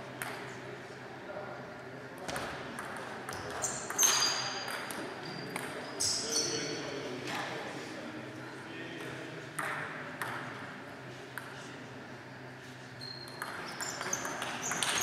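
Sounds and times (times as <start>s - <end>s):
table tennis ball hits: 9.6s - 10.6s, 13.3s - 15.0s
ball bouncing away: 13.3s - 15.0s.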